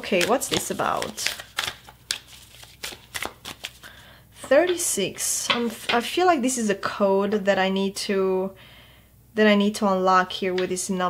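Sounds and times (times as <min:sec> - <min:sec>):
cards being shuffled: 0:00.0 - 0:04.0.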